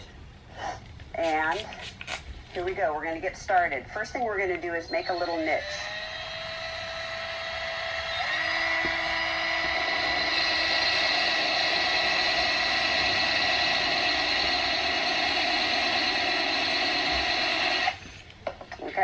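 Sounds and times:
drill grinding into ceramic: 5.1 - 18.2.

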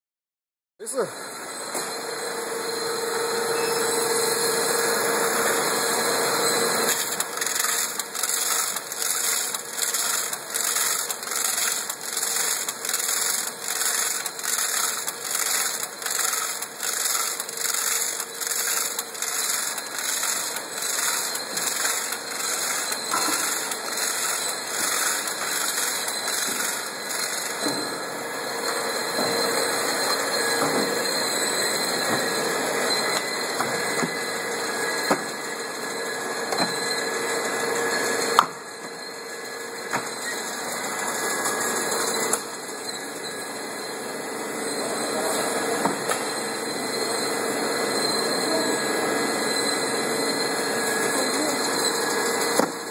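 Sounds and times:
machine motor hum and whine: 0.9 - 52.9
rhythmic cutting head strokes: 6.9 - 27.7.

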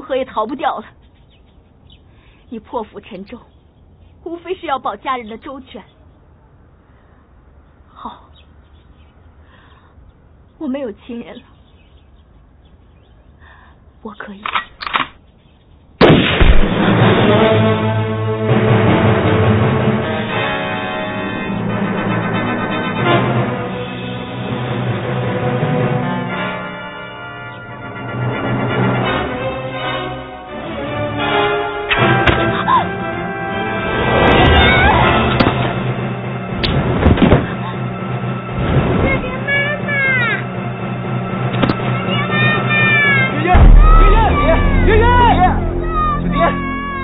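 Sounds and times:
loud gunshot: 16.0 - 17.2, 43.5 - 45.6
dramatic soundtrack music: 16.4 - 47.0
girl crying and wailing: 32.4 - 33.0, 34.5 - 35.3, 42.1 - 47.0.

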